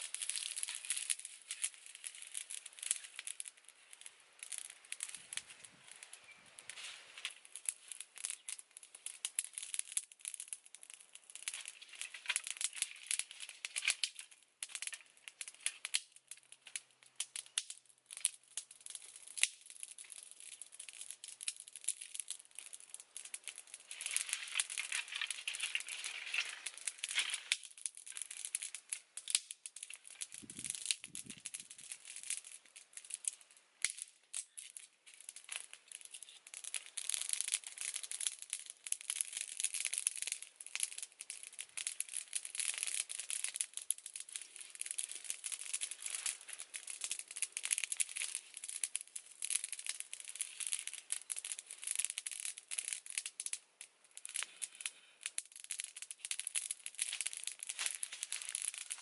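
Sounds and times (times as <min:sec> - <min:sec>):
dry sticks and leaves crackling: 0:00.0 - 0:59.0.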